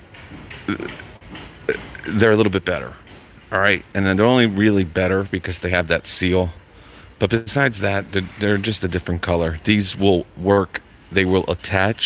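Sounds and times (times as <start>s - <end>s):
man's low vocal sounds: 0.7s - 1.1s, 1.7s - 2.3s.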